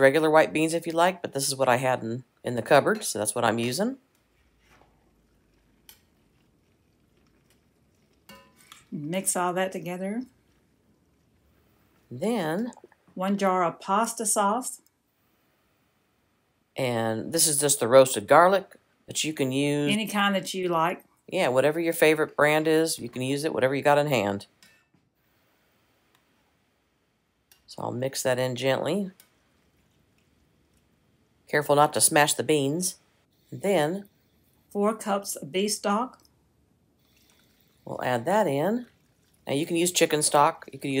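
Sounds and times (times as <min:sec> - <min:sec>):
spoon stirring thick sauce: 0:04.2 - 0:08.9.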